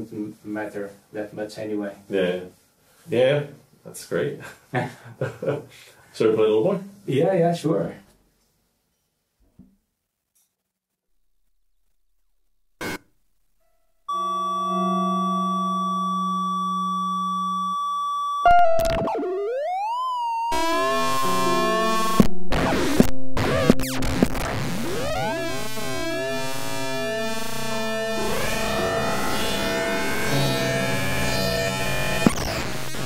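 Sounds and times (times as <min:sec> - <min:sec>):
electroacoustic improvised music: 0:14.1 - 0:33.0
steady electronic tones: 0:14.1 - 0:33.0.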